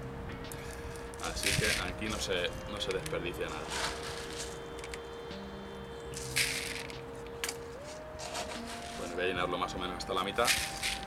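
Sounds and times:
quiet background music: 0.0 - 11.0
plastic scoop rustling granules: 0.7 - 5.0, 6.2 - 7.0, 7.8 - 9.3, 10.2 - 11.0.

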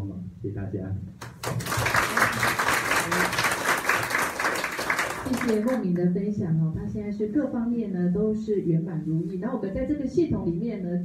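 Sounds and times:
audience applauding: 1.2 - 5.8.

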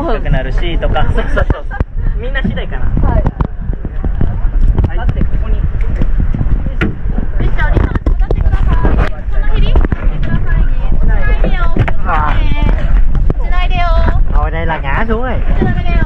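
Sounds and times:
people talking: 0.0 - 16.0
steady low rumble: 0.0 - 16.0.

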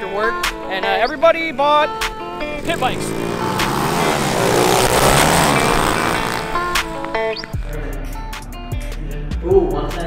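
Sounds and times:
background music: 0.0 - 10.0
pit bike engines revving: 0.2 - 7.8.

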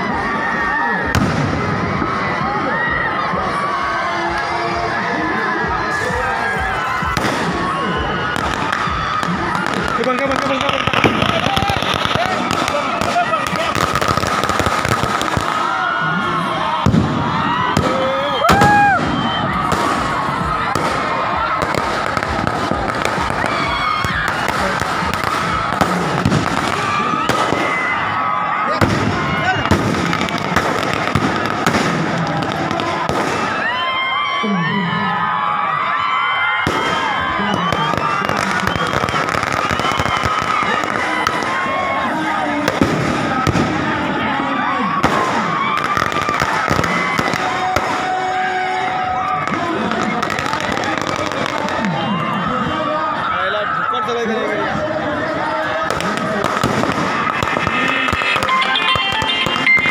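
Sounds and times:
crowd shouting: 0.0 - 59.9
firecrackers cracking rapidly: 1.1 - 2.2, 6.2 - 16.0, 16.6 - 33.8, 36.6 - 44.3, 44.9 - 52.0, 55.8 - 59.9.

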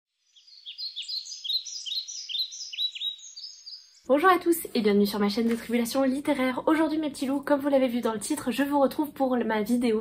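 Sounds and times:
small birds chirping: 0.1 - 4.1.

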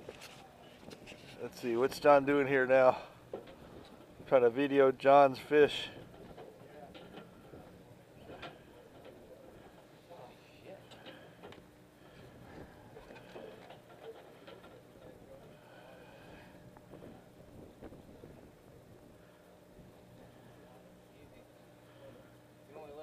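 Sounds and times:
boat engine hum: 0.0 - 23.0
faint indistinct voices: 6.3 - 23.0.

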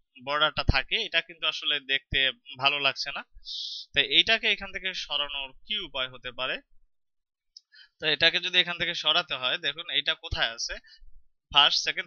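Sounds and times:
man speaking: 0.2 - 6.6, 8.0 - 12.0.

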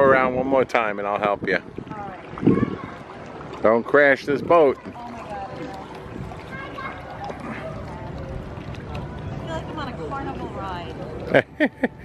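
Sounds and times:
faint voices: 1.3 - 11.4.

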